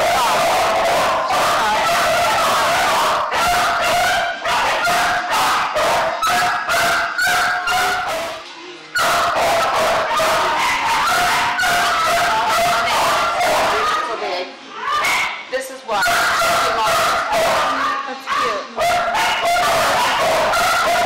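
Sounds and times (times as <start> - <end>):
dogs barking and yelping: 0.0 - 14.2, 14.8 - 21.0.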